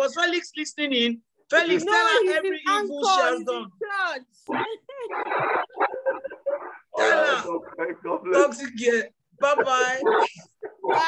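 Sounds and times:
person laughing: 0:04.5 - 0:07.1.

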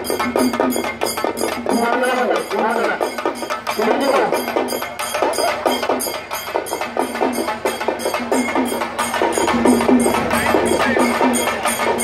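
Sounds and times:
drums in a fast even beat: 0:00.0 - 0:12.0.

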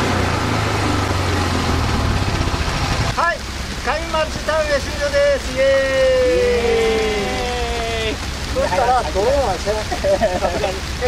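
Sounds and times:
rain hissing: 0:00.0 - 0:11.0
voices holding long notes: 0:03.3 - 0:11.0.

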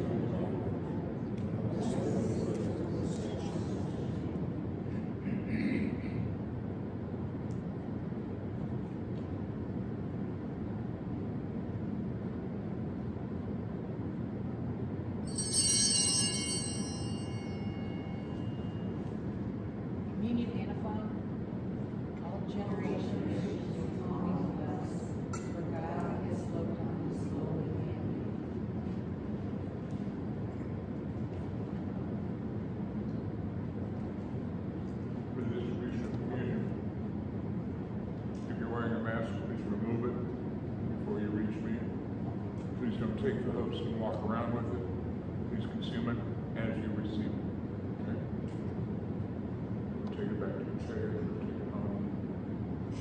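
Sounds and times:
low room hum: 0:00.0 - 0:53.0
altar bells ringing: 0:15.3 - 0:19.0.

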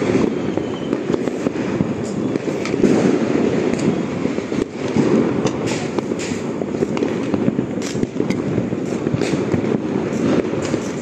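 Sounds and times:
firecrackers crackling: 0:00.0 - 0:11.0
sharp firecracker bangs: 0:00.0 - 0:11.0.

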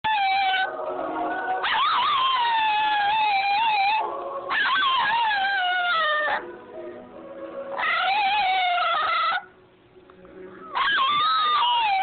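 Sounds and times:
dog howling: 0:00.0 - 0:06.5, 0:07.8 - 0:09.5, 0:10.6 - 0:12.0.

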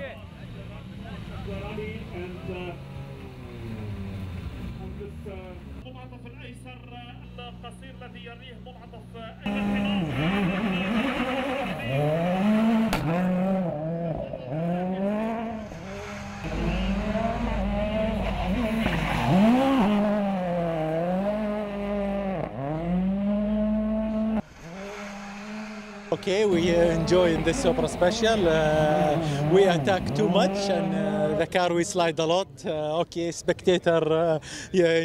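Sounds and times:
rally car engine revving: 0:09.1 - 0:31.6.

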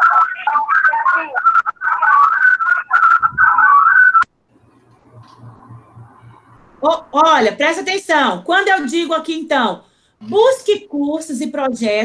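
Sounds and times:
faint low hum: 0:02.8 - 0:12.0.

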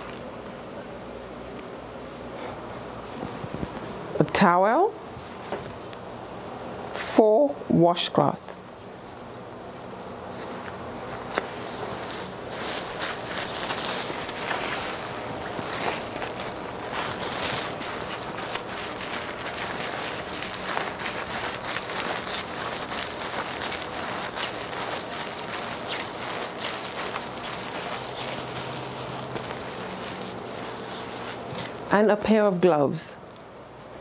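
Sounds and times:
cloth and plastic rustling: 0:00.0 - 0:00.4, 0:01.3 - 0:06.0, 0:10.2 - 0:32.6
footsteps: 0:10.3 - 0:31.8.

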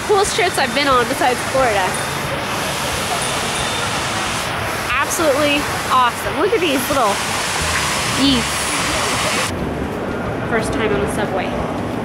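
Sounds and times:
fountain water splashing into basin: 0:00.4 - 0:09.5.

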